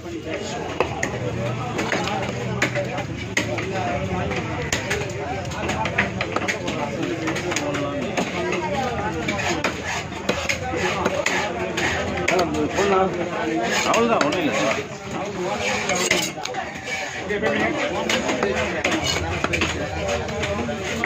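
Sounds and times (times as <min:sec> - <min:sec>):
chatter of voices: 0:00.0 - 0:21.0
knife chopping fish on wood: 0:00.7 - 0:12.8, 0:18.0 - 0:21.0.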